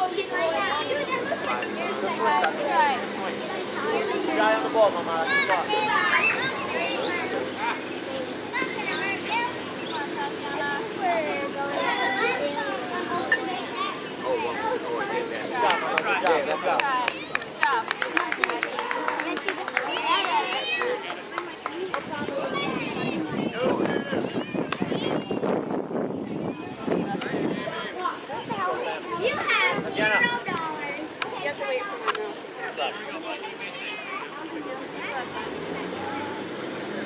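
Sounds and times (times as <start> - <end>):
children talking and calling out: 0.0 - 37.0.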